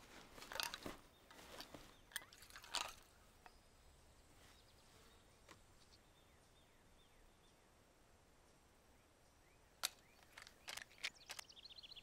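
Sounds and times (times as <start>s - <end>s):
faint bird chirps: 3.0s - 7.8s, 8.4s - 12.0s.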